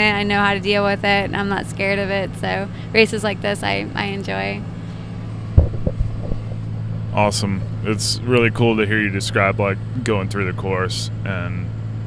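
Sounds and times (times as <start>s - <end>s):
car driving drone: 0.0s - 12.0s
microphone handling thumps: 5.5s - 6.8s.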